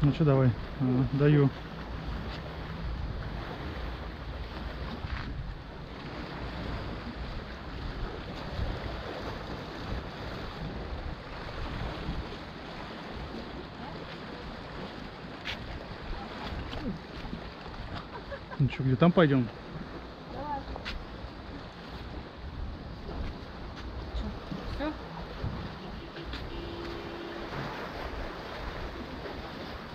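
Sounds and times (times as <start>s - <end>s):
sea waves on rocky shore: 0.0s - 29.9s
wind noise on microphone: 1.8s - 18.2s, 19.7s - 29.9s.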